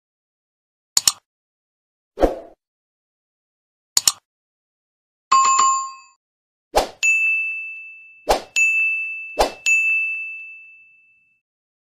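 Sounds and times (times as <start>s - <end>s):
bright high ding: 7.0s - 11.4s.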